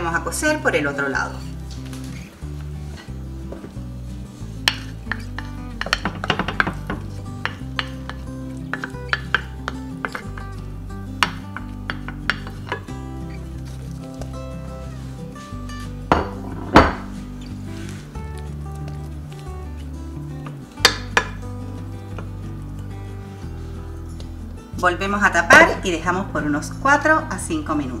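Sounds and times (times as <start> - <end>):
background music: 0.0 - 28.0
wooden spoon scraping frying pan: 17.7 - 18.1.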